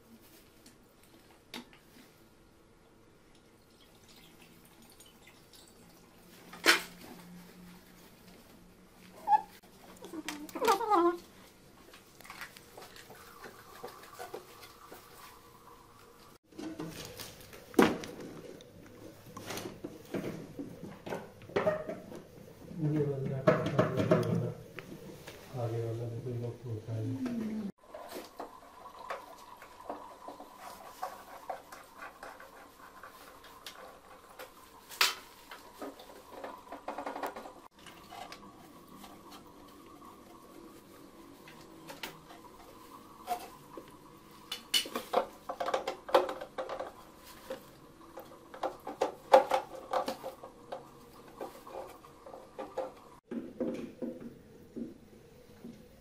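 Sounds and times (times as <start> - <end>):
person speaking: 10.0 - 11.2
plastic parts clicking and knocking: 44.5 - 47.0, 48.2 - 50.8.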